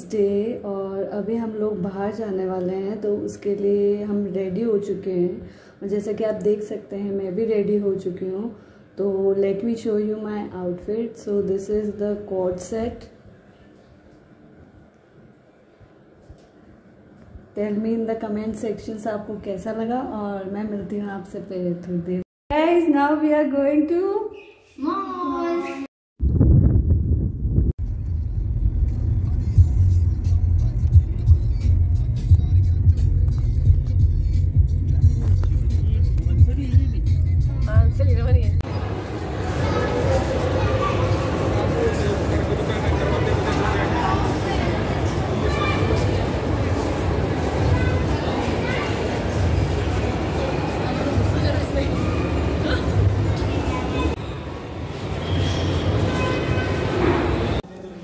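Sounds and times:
steady low rumble: 0:26.2 - 0:38.7
indistinct crowd chatter: 0:29.1 - 0:58.0.

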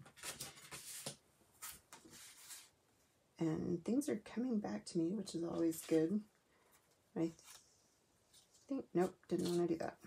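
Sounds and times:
paper rustling and sliding: 0:00.0 - 0:02.8.

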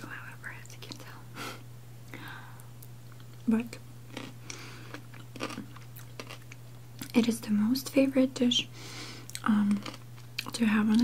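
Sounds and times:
wet crunchy chewing: 0:04.1 - 0:07.2, 0:09.3 - 0:11.0.

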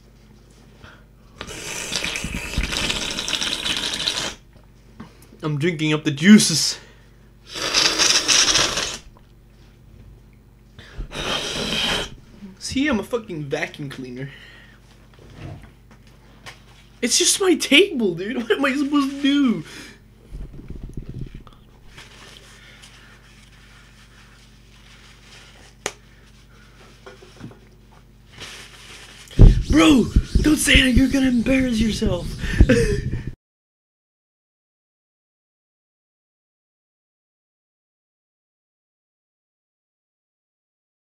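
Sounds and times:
low electrical hum: 0:00.0 - 0:33.4
person slurping water: 0:01.4 - 0:04.4, 0:07.5 - 0:09.2, 0:11.1 - 0:12.2.

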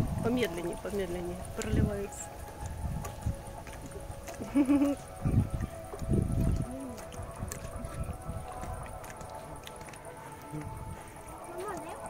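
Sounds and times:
lion lapping water: 0:00.0 - 0:12.0.

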